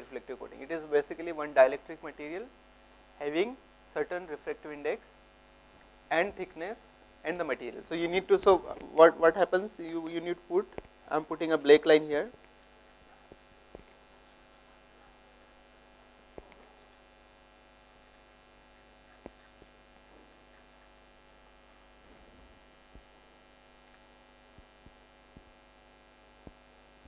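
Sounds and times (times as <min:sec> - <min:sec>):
electrical mains hum: 0:00.0 - 0:27.0.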